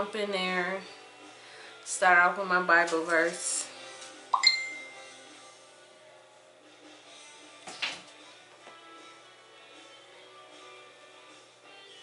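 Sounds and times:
faint background music: 0:00.0 - 0:12.0
bright chime: 0:04.4 - 0:05.1.

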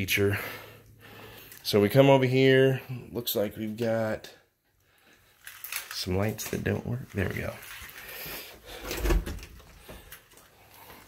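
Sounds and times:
door clicks and rustles: 0:08.8 - 0:10.2.

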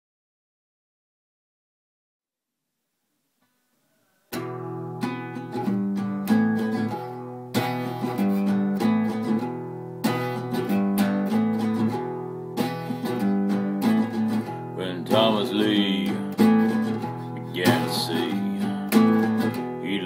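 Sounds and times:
acoustic guitar strummed chords: 0:04.3 - 0:20.0.

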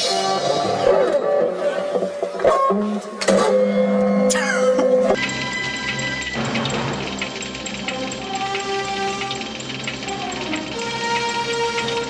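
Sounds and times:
steady fast ticking: 0:05.2 - 0:12.0.

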